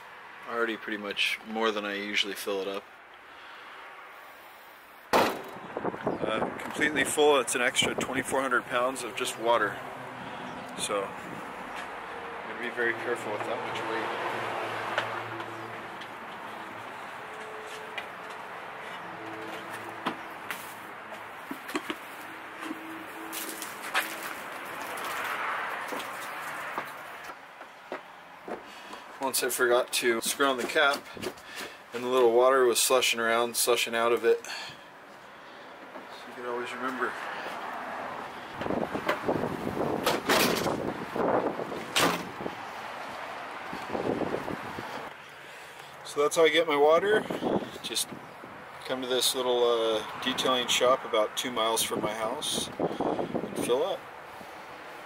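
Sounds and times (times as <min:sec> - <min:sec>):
outdoor background noise: 0:00.0 - 0:55.0
wind on microphone: 0:05.6 - 0:07.1, 0:38.6 - 0:42.7, 0:43.6 - 0:45.1, 0:52.6 - 0:53.7.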